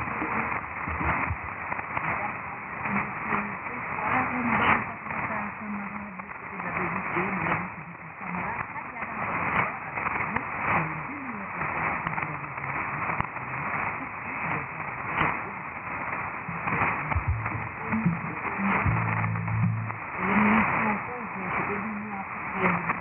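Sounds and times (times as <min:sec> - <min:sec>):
faint radio voice and programme: 0:00.0 - 0:23.0
static hiss: 0:00.0 - 0:23.0.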